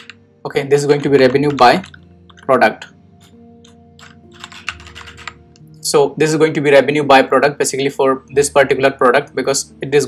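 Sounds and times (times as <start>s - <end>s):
computer keyboard typing: 0.0s - 0.2s, 0.8s - 2.5s, 3.2s - 5.6s.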